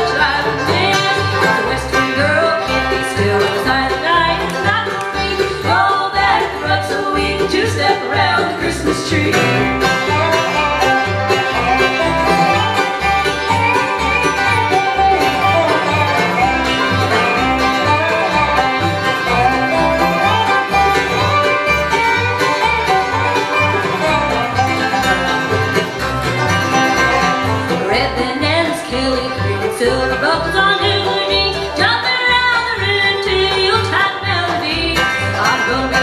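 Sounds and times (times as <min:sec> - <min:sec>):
banjo: 0:00.0 - 0:36.0
fiddle: 0:00.0 - 0:36.0
strummed acoustic guitars: 0:00.0 - 0:36.0
upright bass plucking: 0:00.0 - 0:36.0.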